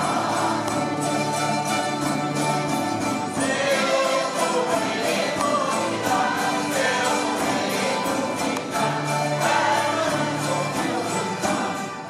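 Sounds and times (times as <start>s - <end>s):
small choir singing in unison: 0.0s - 2.1s, 3.2s - 12.0s
acoustic guitar strumming: 0.0s - 12.0s
strummed cavaquinhos: 0.0s - 12.0s.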